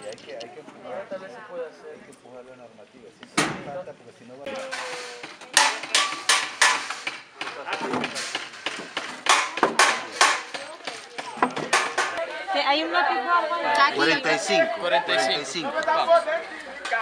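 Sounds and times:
sharp knocks on wood: 5.6s - 10.6s.

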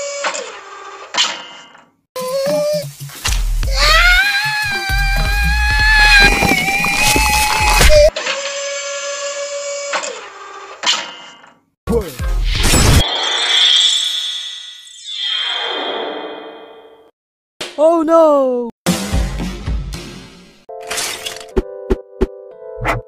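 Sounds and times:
cartoon scream: 3.7s - 10.2s.

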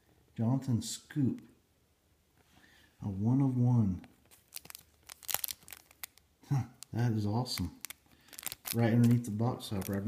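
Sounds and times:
cellophane wrapper crinkling: 4.0s - 10.0s.

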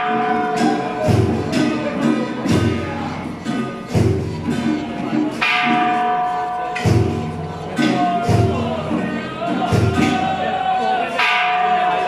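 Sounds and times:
drum and gong beats: 0.0s - 10.4s.

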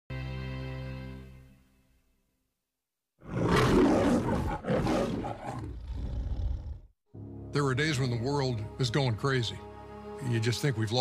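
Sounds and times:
lion roar: 3.2s - 6.9s.

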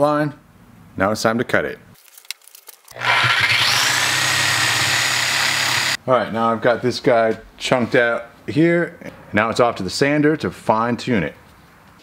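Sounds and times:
power tool cutting metal: 3.0s - 6.0s.

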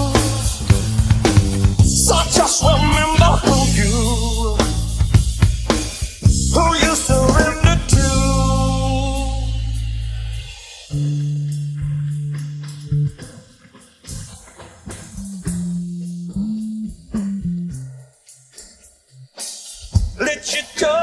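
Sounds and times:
rock band playing: 0.0s - 9.5s
drum and cymbal crash: 0.0s - 11.3s
electric bass low notes: 0.0s - 13.4s, 15.1s - 18.0s
drum and hi-hat hits: 0.0s - 21.0s.

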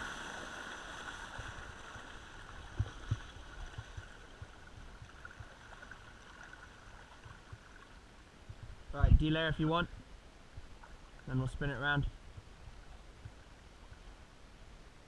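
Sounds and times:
water rushing along hull: 0.0s - 8.9s.

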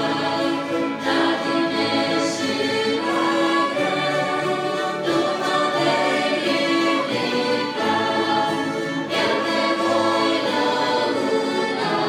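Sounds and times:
choir singing: 0.0s - 12.0s
string orchestra playing chords: 0.0s - 12.0s.

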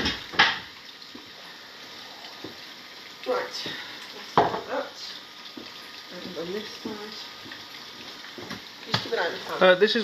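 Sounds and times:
food sizzling in a pot: 0.0s - 10.0s.

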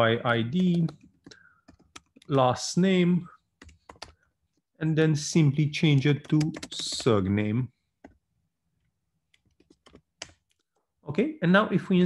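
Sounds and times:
typing on computer keyboard: 0.6s - 2.3s, 3.6s - 4.2s, 5.9s - 7.2s, 9.3s - 10.6s.

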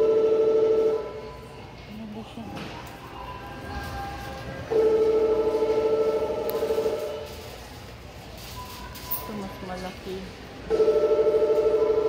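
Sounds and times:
store background hum: 0.0s - 12.0s
loud held tone: 4.7s - 7.4s.

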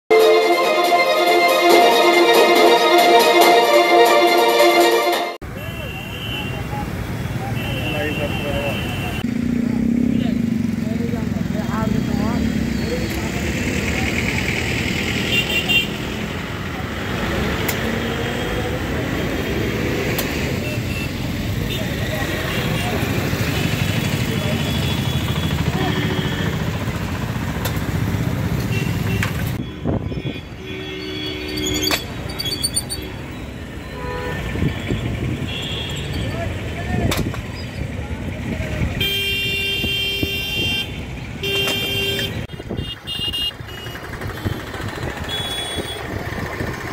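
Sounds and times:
news intro music: 0.1s - 5.4s
vehicle horns: 0.1s - 9.3s, 14.9s - 16.4s, 17.2s - 26.9s, 28.5s - 36.8s, 38.9s - 46.5s
traffic: 0.1s - 46.9s.

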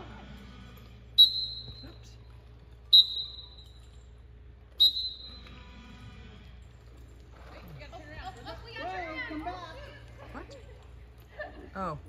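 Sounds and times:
shrill whistle blasts: 1.2s - 2.0s, 2.8s - 3.8s, 4.7s - 5.6s.

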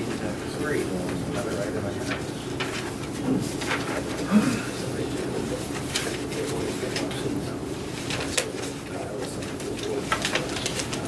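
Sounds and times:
low room hum: 0.0s - 11.0s
paper rustling: 0.1s - 4.3s, 4.9s - 11.0s.

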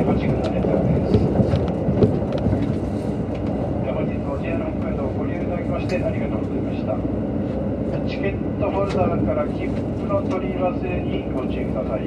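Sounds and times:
train engine and wheels rumbling: 0.0s - 12.0s.

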